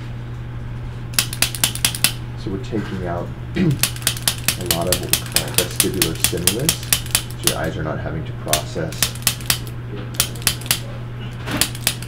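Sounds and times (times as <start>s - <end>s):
steady low hum: 0.0s - 12.0s
adjusting instrument sharp clicks: 1.2s - 2.2s, 3.8s - 7.7s, 8.5s - 10.8s, 11.6s - 12.0s.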